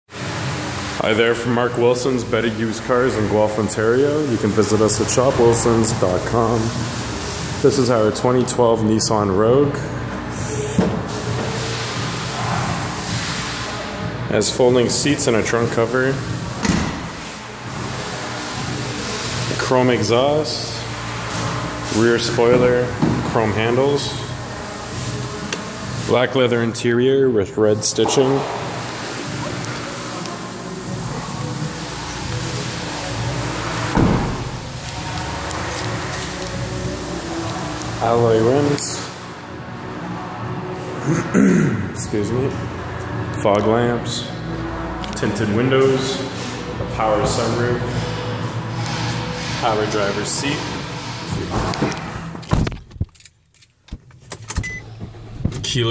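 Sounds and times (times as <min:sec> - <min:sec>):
car door shutting: 0:16.6 - 0:17.2, 0:33.9 - 0:34.6.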